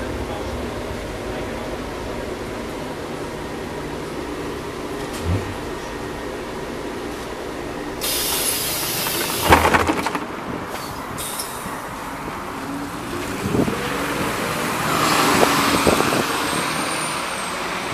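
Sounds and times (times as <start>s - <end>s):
bus diesel engine pulling away: 0.0s - 9.5s, 10.4s - 17.9s
street traffic: 0.0s - 17.9s
pneumatic bus doors hissing: 8.0s - 9.8s, 10.7s - 11.9s
clatter: 8.5s - 10.9s.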